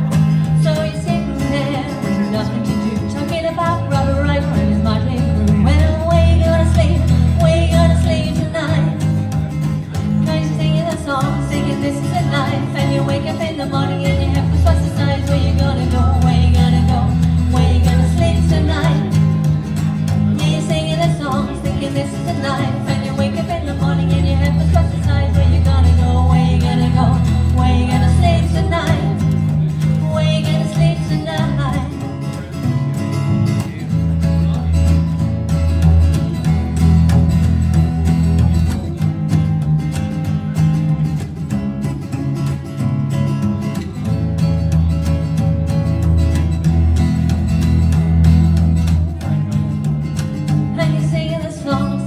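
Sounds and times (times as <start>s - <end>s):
double bass plucking low notes: 0.0s - 52.0s
plucked guitar: 0.0s - 52.0s.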